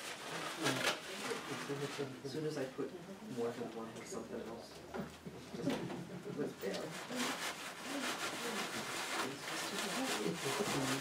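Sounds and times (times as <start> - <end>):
brush scrubbing paint on board: 6.6 - 11.0.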